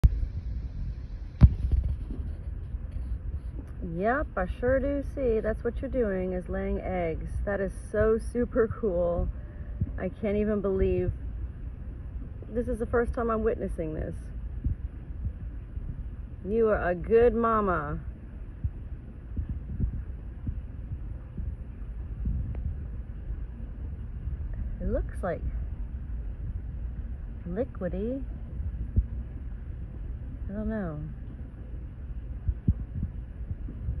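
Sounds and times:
low microphone rumble: 0.0 - 34.0
soft low thumps: 0.0 - 34.0
dull thumps on microphone: 1.4 - 3.7.

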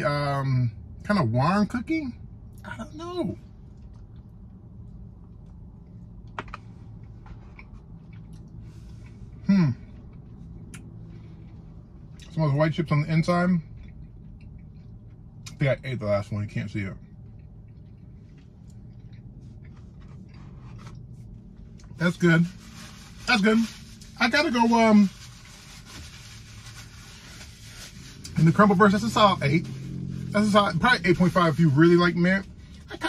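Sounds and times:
steady low hum: 0.0 - 33.0
person chewing crunchy cookie: 3.6 - 12.4, 13.6 - 15.7, 17.0 - 22.0.

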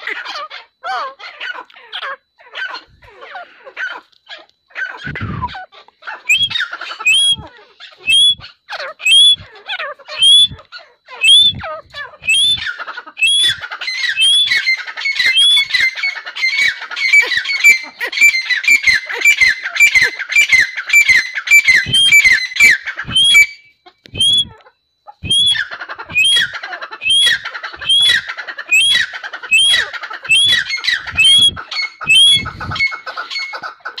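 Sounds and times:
francolin calling: 0.0 - 34.0.

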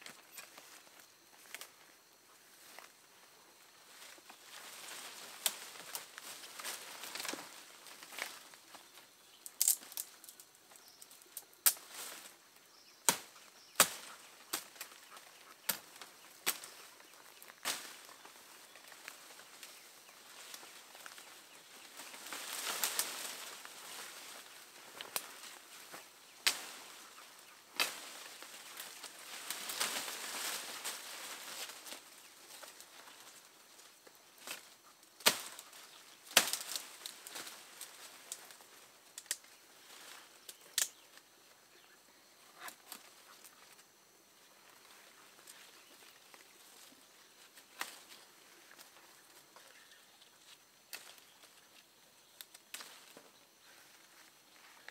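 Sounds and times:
leaves rustling: 0.0 - 54.9
twigs snapping: 4.9 - 8.4, 9.4 - 12.2, 13.0 - 16.8, 17.5 - 18.1, 21.9 - 24.4, 25.0 - 25.4, 26.4 - 26.8, 27.7 - 32.8, 34.4 - 38.5, 39.2 - 39.5, 40.4 - 41.2, 50.9 - 51.4, 52.4 - 53.0.

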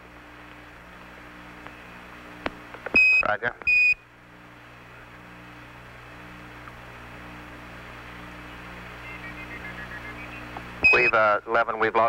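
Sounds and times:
low electrical hum: 0.0 - 12.0
radio hiss: 4.6 - 12.0.

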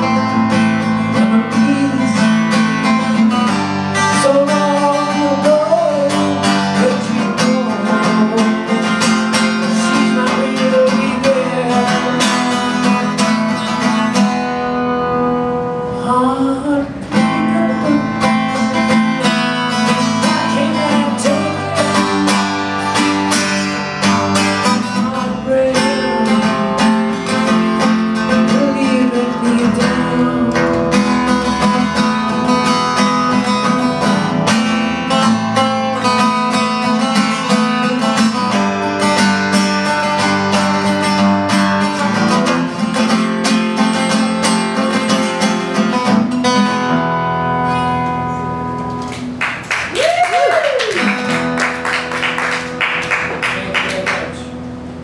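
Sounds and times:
acoustic guitar strumming chords: 0.0 - 49.9, 51.0 - 55.0.

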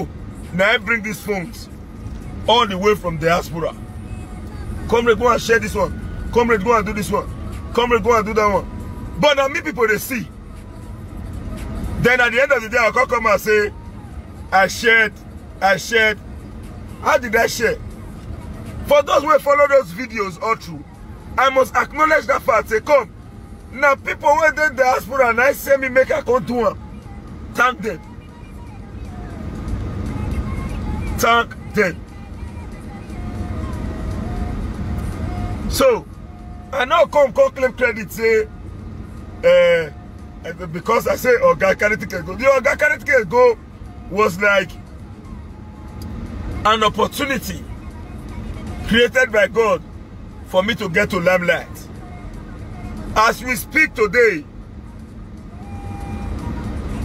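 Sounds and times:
car rumble from inside cabin: 0.0 - 57.0.

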